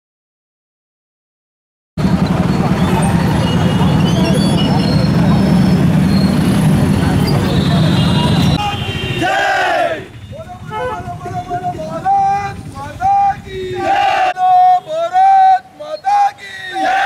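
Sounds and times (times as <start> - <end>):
crowd voices: 2.0 - 17.0
vehicle engines: 2.0 - 17.0.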